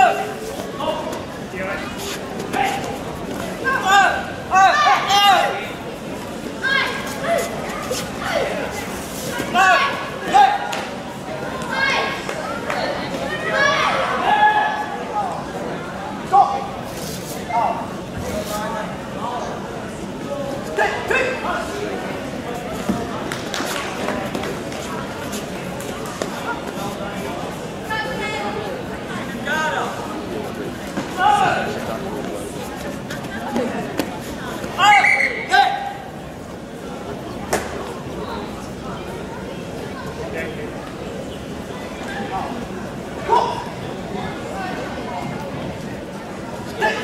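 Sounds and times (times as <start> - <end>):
crowd chatter in echoing hall: 0.0 - 47.0.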